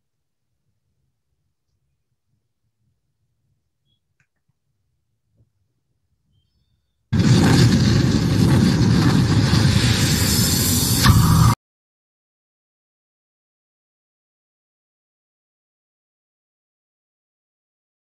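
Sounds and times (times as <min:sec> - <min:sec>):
rushing explosion sound effect: 0:07.2 - 0:11.6.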